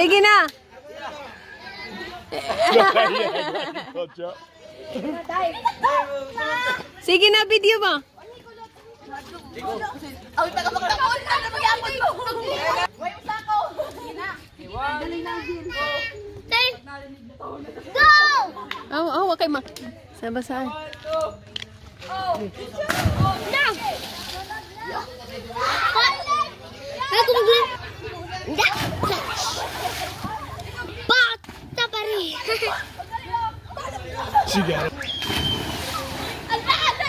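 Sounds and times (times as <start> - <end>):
people chattering and calling out: 0.0 - 37.0
splash of jump into water: 22.8 - 24.5, 35.0 - 36.6
children shouting: 24.8 - 31.4, 35.7 - 37.0.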